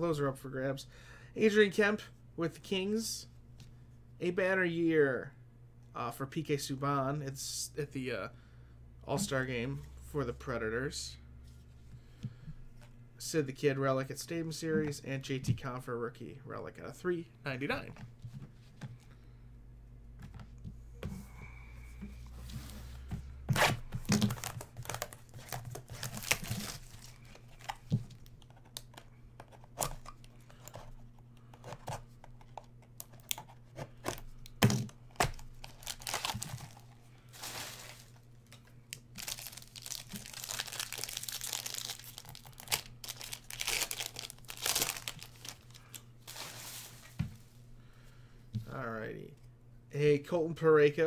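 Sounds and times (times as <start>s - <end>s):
cards rustling: 23.6s - 34.4s, 35.0s - 47.2s
wrapper crinkling: 24.1s - 29.0s, 35.2s - 47.1s.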